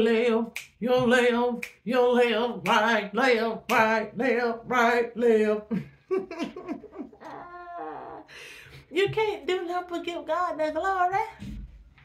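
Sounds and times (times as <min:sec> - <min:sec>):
woman laughing: 0:05.7 - 0:08.2
breathy exhale: 0:08.3 - 0:08.9.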